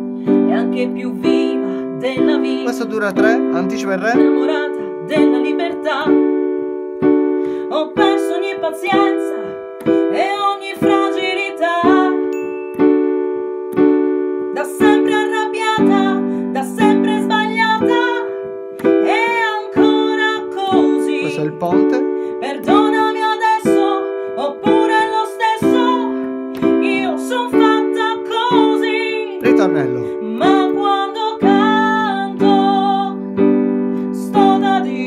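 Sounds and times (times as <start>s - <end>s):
woman singing: 0.0s - 2.8s, 4.2s - 6.7s, 7.5s - 12.4s, 14.5s - 21.5s, 22.3s - 35.0s
digital piano block chords: 0.0s - 35.0s.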